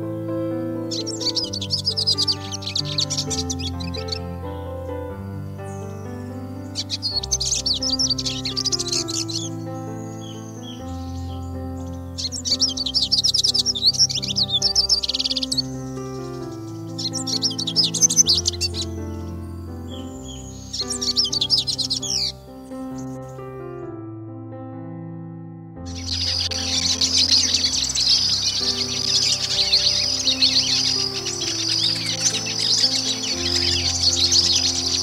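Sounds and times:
birds twittering: 0.0s - 23.9s, 25.9s - 35.0s
slow background music: 0.0s - 35.0s.

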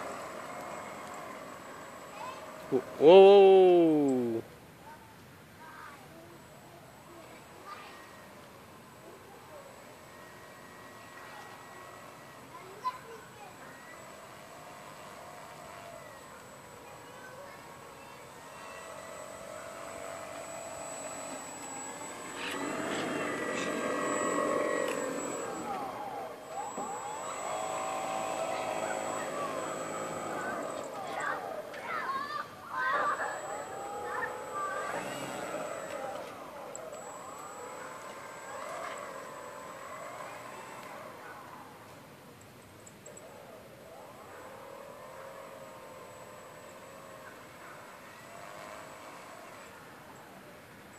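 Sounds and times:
model airplane motor and propeller: 0.0s - 4.5s, 5.6s - 50.9s.

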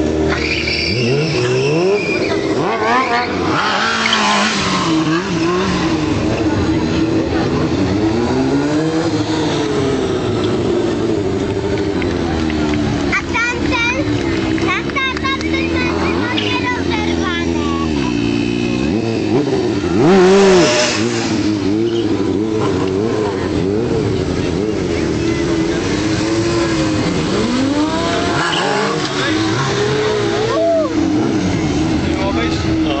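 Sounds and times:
motorcycle engine revving: 0.0s - 33.0s.

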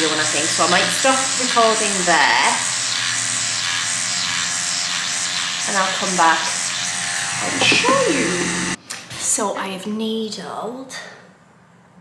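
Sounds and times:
microneedling pen buzzing: 0.0s - 8.8s.

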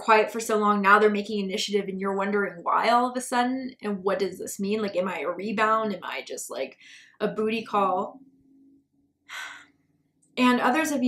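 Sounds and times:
woman speaking: 0.0s - 8.2s, 10.4s - 11.0s
woman breathing in: 6.8s - 7.2s, 9.3s - 9.8s.

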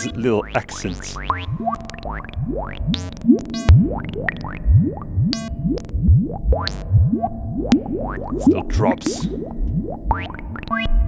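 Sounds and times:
synthesizer notes swooping upward: 0.0s - 10.9s.

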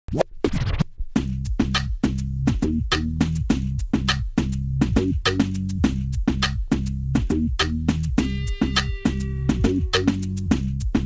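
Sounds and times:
vinyl record scratching: 0.1s - 1.8s
beat with bass and drums: 0.5s - 11.0s.

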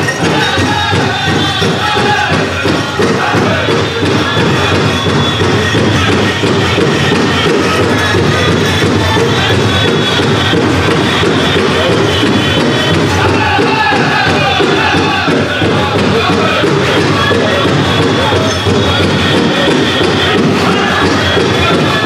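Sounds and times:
big drum beat: 0.0s - 22.0s
drum group singing in unison: 0.0s - 22.0s.

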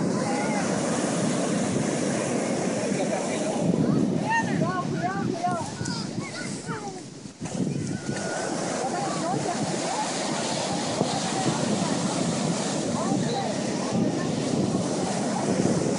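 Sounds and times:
ocean surf breaking on beach: 0.0s - 15.9s
wind on microphone: 0.0s - 15.9s.

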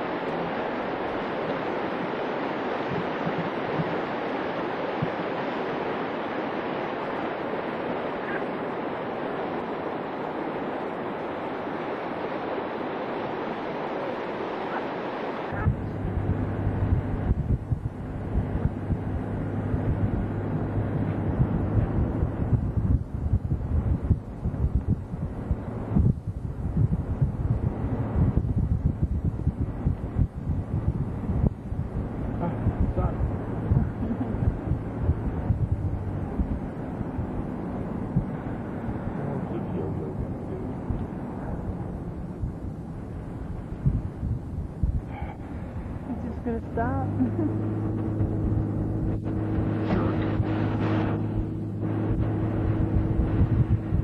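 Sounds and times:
stream rushing over rocks: 0.0s - 15.8s
vehicle low hum: 0.0s - 54.0s
wind buffeting microphone: 0.0s - 54.0s.

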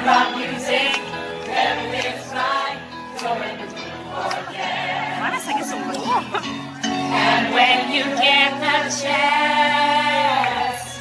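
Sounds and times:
group singing together: 0.0s - 6.2s, 6.8s - 11.0s
musical accompaniment: 0.0s - 11.0s.

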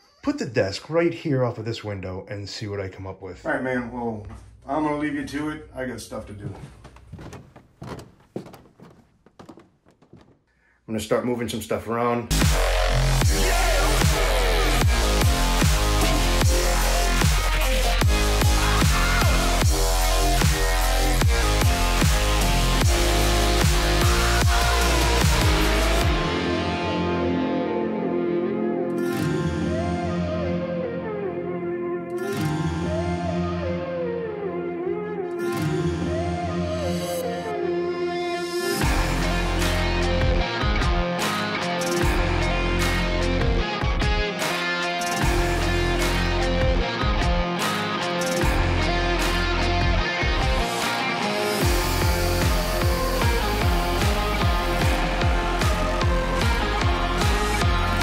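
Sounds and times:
footsteps dull thunks and knocks: 6.2s - 10.6s
looping background music: 12.3s - 58.0s.

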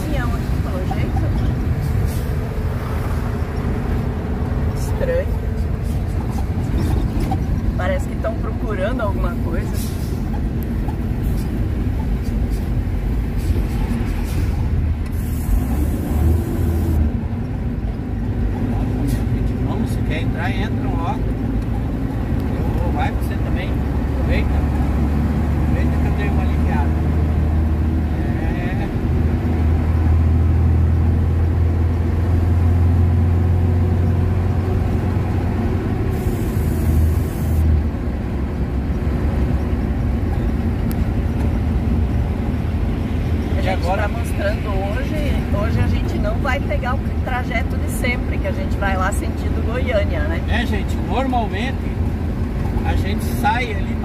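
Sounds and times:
truck engine and road noise: 0.0s - 54.0s.

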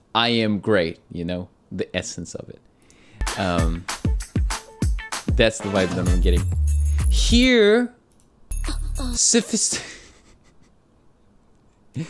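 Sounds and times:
trailer music: 3.2s - 7.5s, 8.5s - 9.2s.

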